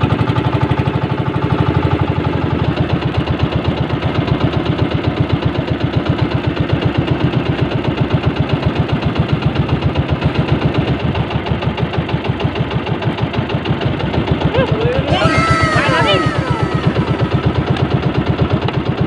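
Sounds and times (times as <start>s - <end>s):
boat engine running: 0.0s - 19.0s.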